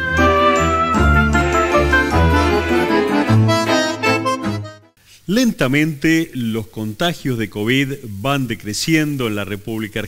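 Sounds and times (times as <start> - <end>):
instrumental jingle: 0.0 - 5.0.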